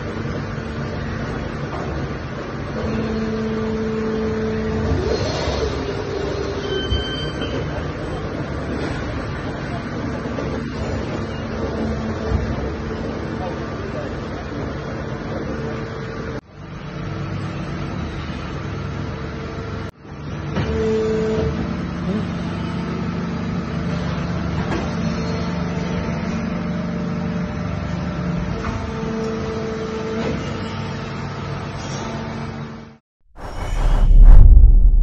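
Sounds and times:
deep boom: 0:33.4 - 0:35.0
whoosh: 0:33.4 - 0:35.0.

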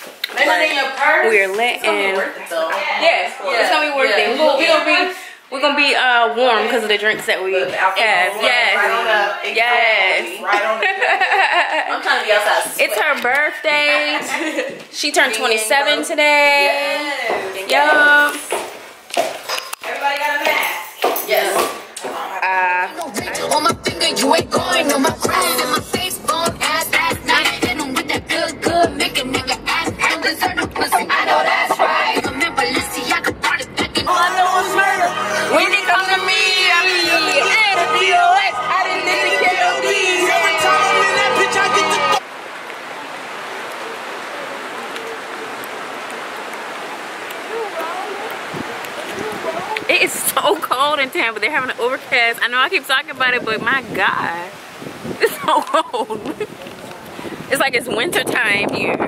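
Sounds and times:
faint distant voices: 0:42.8 - 0:51.2.

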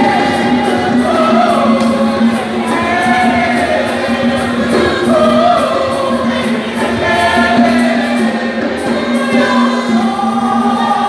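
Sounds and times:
women's choir singing a hymn: 0:00.0 - 0:11.0.

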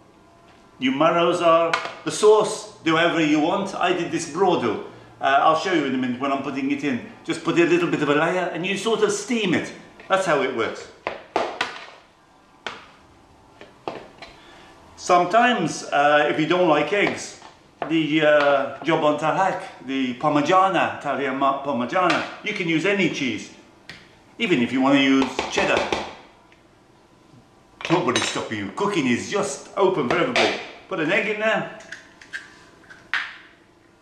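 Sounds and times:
man talking: 0:00.8 - 0:11.0, 0:15.0 - 0:23.6, 0:24.4 - 0:26.0, 0:27.8 - 0:31.8.

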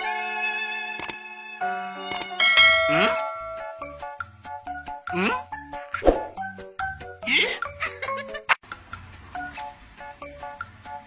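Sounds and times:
bright bell ding: 0:02.1 - 0:04.0.

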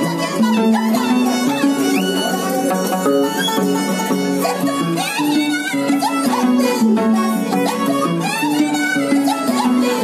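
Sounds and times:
harp plucking bass line: 0:00.0 - 0:05.6
bowed violin melody: 0:00.0 - 0:10.0.

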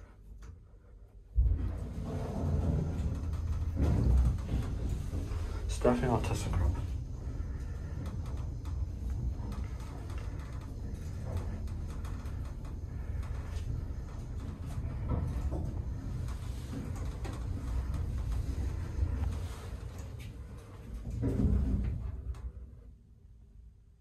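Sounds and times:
faint clicks and knocks: 0:00.0 - 0:22.9
elevator low rumble: 0:00.0 - 0:24.0.

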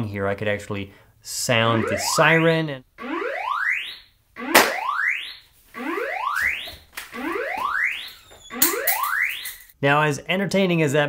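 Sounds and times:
whooping siren: 0:01.7 - 0:09.5.

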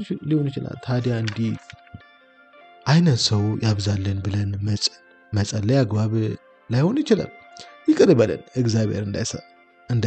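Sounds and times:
person speaking: 0:00.0 - 0:02.0, 0:02.9 - 0:10.0
faint background music: 0:00.0 - 0:10.0.

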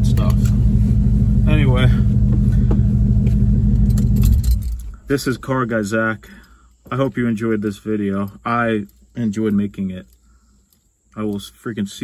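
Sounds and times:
truck engine idling: 0:00.0 - 0:06.5.

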